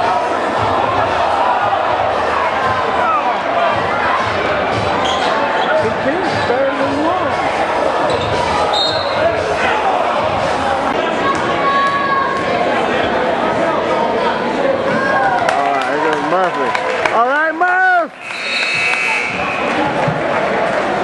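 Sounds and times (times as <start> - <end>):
crowd and player voices: 0.0 - 21.0.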